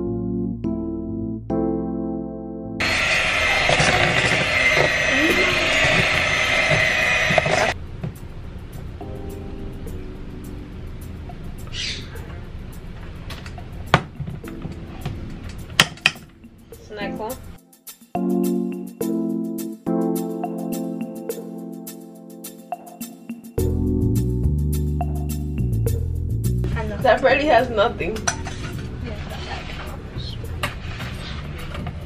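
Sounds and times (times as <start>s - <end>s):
electric hand mixer running: 2.8s - 7.8s
spatula scraping metal pot: 28.2s - 30.0s.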